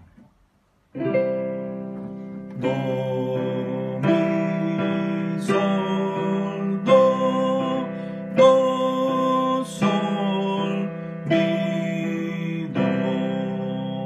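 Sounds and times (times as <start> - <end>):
digital piano chords: 0.0 - 14.0.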